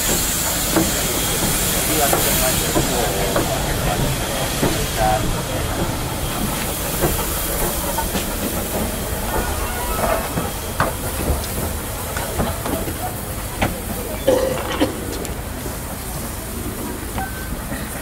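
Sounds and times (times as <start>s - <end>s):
steam locomotive hissing: 0.0s - 18.0s.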